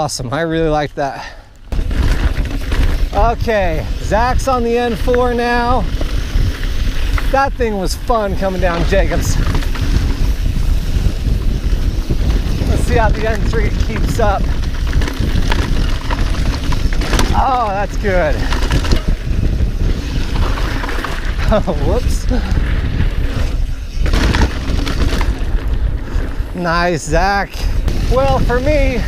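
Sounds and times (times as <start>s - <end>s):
bike rolling on dirt trail: 0.0s - 29.0s
wind buffeting microphone: 0.6s - 29.0s
short rattle from trail: 0.7s - 29.0s.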